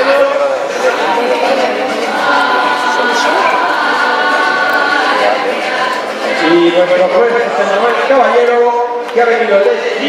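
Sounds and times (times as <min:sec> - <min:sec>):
choir-like sung notes: 0:00.7 - 0:06.9.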